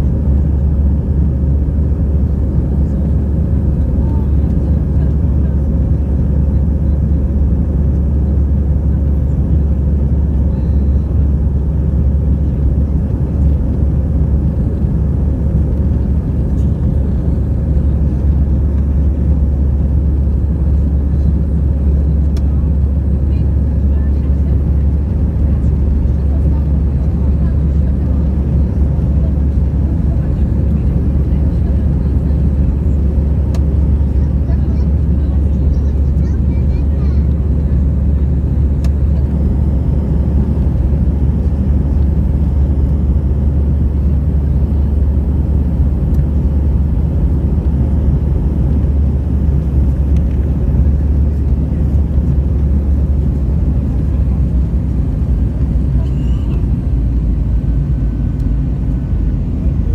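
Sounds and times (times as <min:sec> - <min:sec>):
jet engines droning in cabin: 0:00.0 - 0:59.9.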